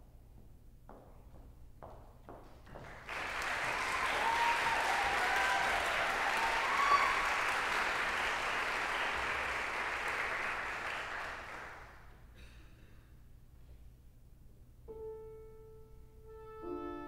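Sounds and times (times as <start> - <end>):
audience applauding: 2.8 - 12.1.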